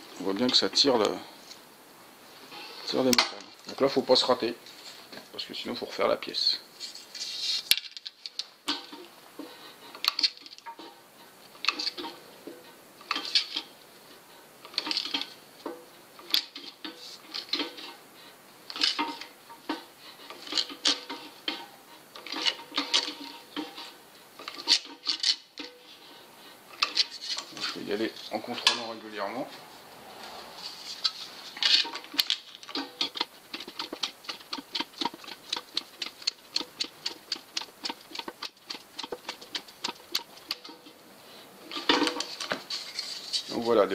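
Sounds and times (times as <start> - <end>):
metal stretcher jaws clacking: 11.6 - 13.7, 18.7 - 27.8, 31.0 - 41.0.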